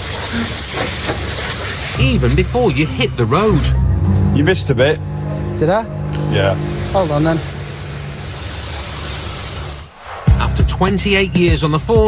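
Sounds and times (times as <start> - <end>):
pressure washer jet hissing: 0.0 - 10.4.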